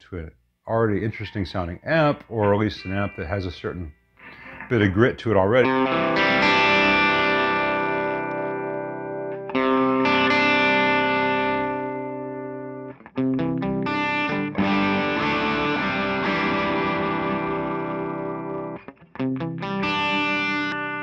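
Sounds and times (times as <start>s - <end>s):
distorted electric guitar chords: 2.4s - 4.6s, 5.6s - 21.0s.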